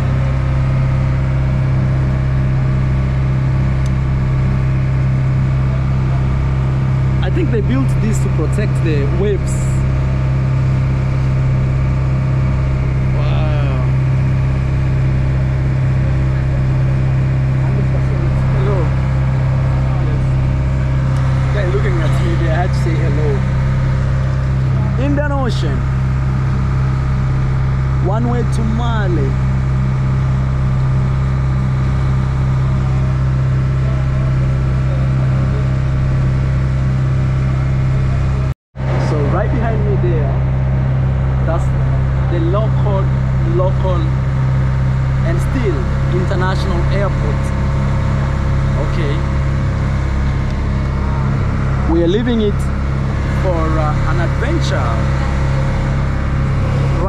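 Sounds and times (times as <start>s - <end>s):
ferry engine droning: 0.0s - 57.0s.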